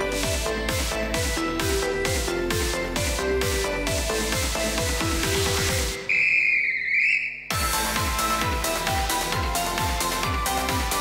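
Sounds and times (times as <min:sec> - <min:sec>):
electronic dance music: 0:00.0 - 0:11.0
wavering whistle blast: 0:06.0 - 0:07.8.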